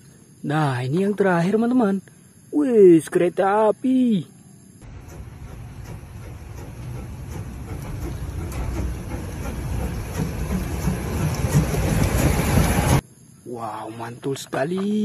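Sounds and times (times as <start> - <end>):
steam locomotive rumbling: 4.8 - 13.0.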